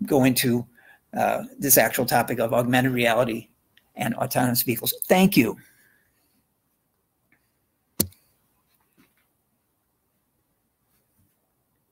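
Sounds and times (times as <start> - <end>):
faint soft sounds: 5.5 - 11.9.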